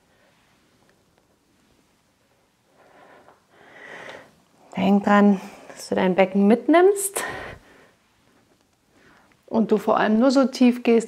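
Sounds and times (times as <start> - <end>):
woman breathing: 2.3 - 5.8, 7.0 - 9.4.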